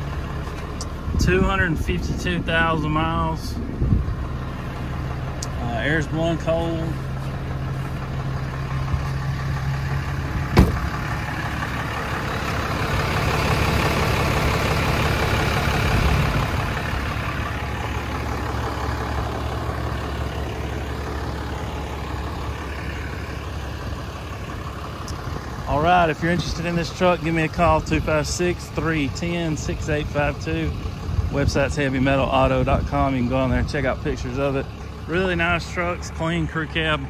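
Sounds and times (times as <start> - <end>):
diesel engine idling: 0.0 - 37.0
sharp engine knock: 10.5 - 11.0.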